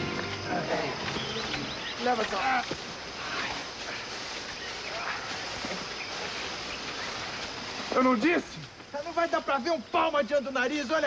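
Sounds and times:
outdoor background hiss: 0:00.0 - 0:11.0.

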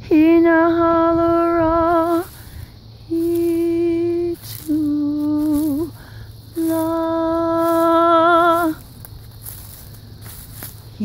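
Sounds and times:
person humming long held notes: 0:00.0 - 0:08.9.

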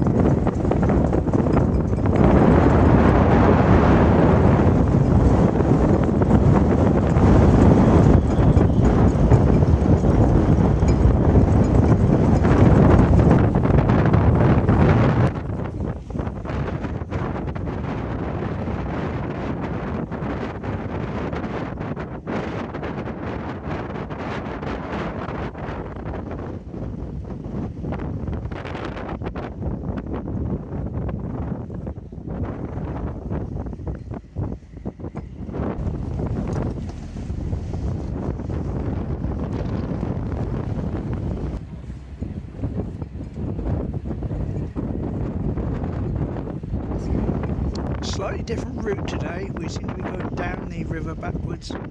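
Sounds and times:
choppy water: 0:00.0 - 0:51.9
wind buffeting microphone: 0:00.0 - 0:51.9.

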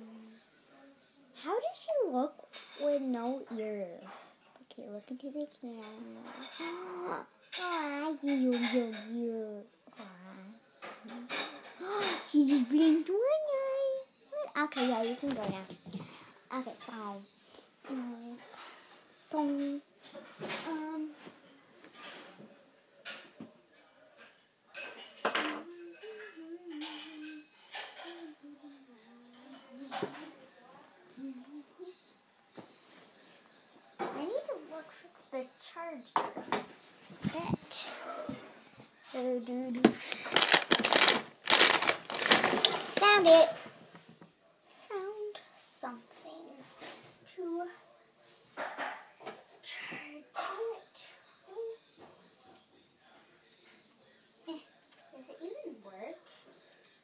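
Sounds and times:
small objects clinking and clattering: 0:40.2 - 0:43.1.

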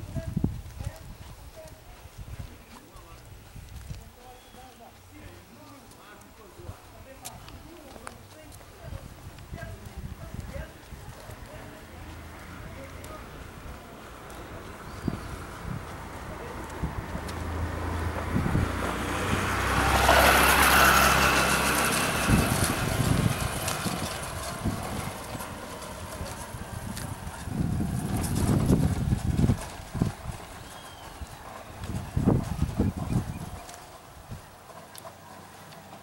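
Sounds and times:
vehicle passing on cobblestones: 0:00.0 - 0:36.0
low rumbles: 0:07.4 - 0:34.7.

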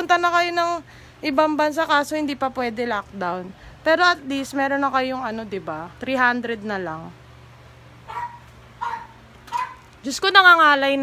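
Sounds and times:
faint steady hum: 0:00.0 - 0:11.0
small dog barking: 0:08.1 - 0:09.9.

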